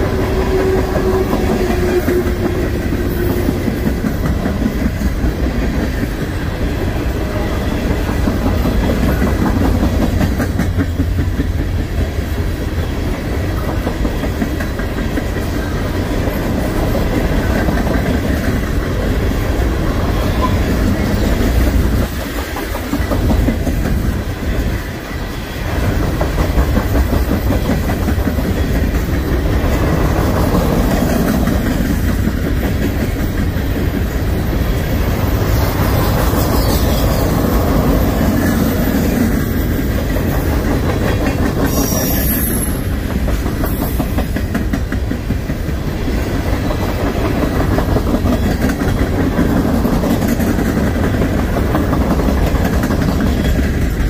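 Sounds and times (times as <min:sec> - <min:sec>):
clickety-clack over rail joints: 0:00.0 - 0:54.0
train wheels rumbling on rails: 0:00.0 - 0:54.0.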